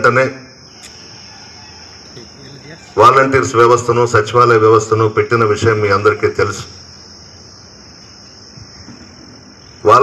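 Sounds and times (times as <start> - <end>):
faint voices murmuring: 2.0 - 3.5.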